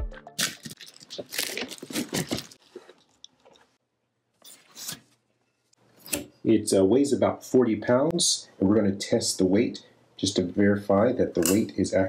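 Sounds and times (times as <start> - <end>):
cardboard box being ripped open: 0.4 - 2.6.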